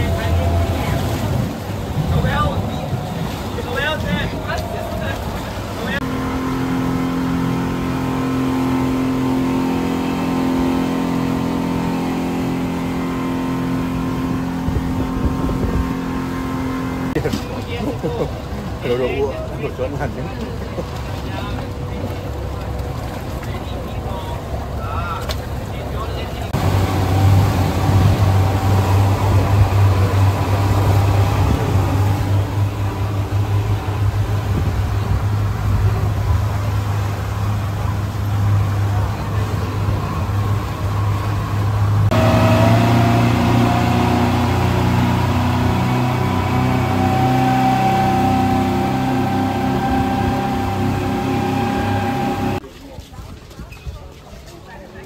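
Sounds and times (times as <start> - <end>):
motorboat engine humming: 0.0 - 52.6.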